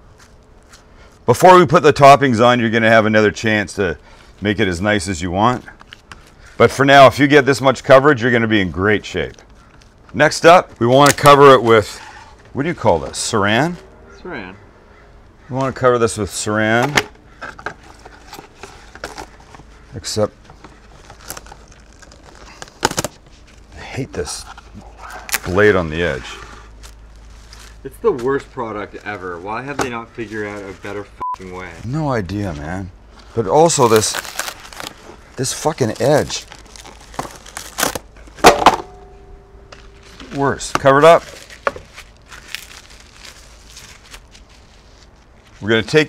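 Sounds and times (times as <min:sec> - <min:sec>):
cling wrap crinkling: 0:03.0 - 0:13.8, 0:17.3 - 0:39.1, 0:39.7 - 0:46.0
plastic wrap crinkling: 0:17.7 - 0:23.7, 0:33.2 - 0:38.4, 0:39.8 - 0:46.0
faint ringing tone: 0:38.9 - 0:40.4.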